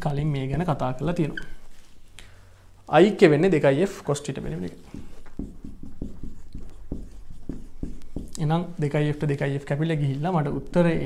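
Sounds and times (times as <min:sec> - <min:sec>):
marker writing on whiteboard: 0:04.4 - 0:09.2.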